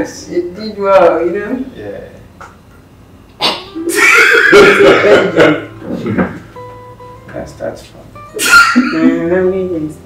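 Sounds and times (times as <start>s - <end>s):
person laughing: 3.8s - 6.4s, 8.4s - 9.2s.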